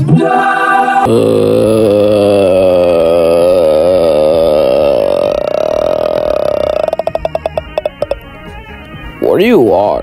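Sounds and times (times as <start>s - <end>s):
long wavering vocal note: 1.0s - 8.1s
rapid stuttering vocal rattle: 1.1s - 8.2s.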